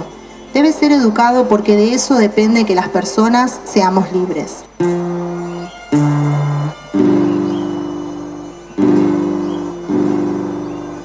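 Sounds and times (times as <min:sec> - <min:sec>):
melodicas recorders and guitar march: 0:00.0 - 0:11.0.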